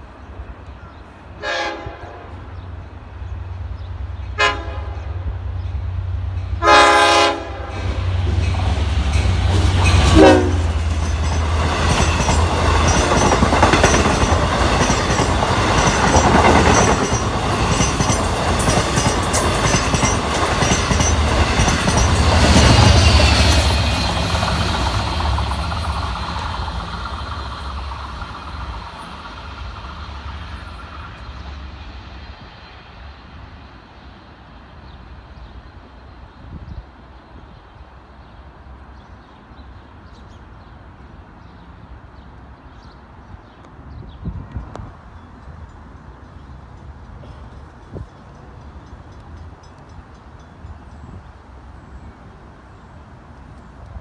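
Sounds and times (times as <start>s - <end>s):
train horn blasts: 1.4s - 2.5s, 4.4s - 5.2s, 6.6s - 8.1s, 9.9s - 10.8s
train wheels clattering on rails: 7.7s - 31.6s.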